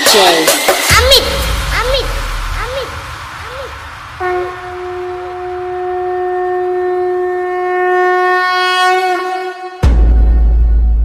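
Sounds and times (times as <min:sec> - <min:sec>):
long horn-like blown note: 0:04.1 - 0:10.4.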